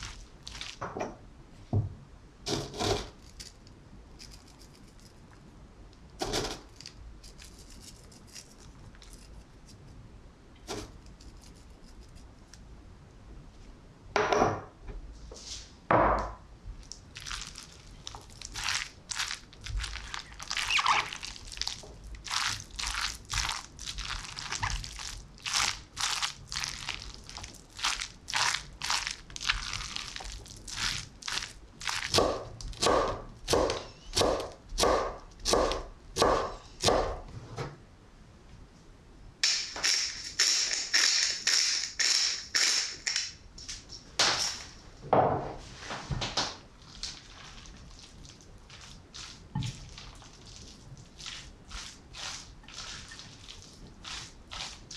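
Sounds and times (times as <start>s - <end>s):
spatula stirring wet salad: 0.0s - 0.8s, 16.9s - 32.8s, 46.8s - 54.9s.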